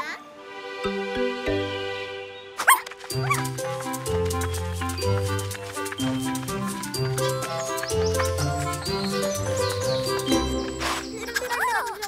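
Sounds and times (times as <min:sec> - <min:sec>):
puppy yips: 0:02.6 - 0:03.4
cartoon music with bass line: 0:03.2 - 0:12.0.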